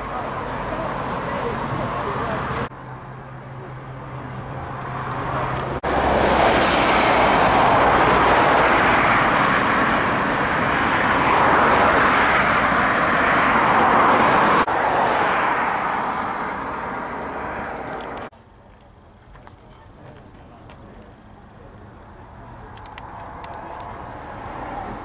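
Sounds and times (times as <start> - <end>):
rushing vehicle noise: 0.0 - 25.0.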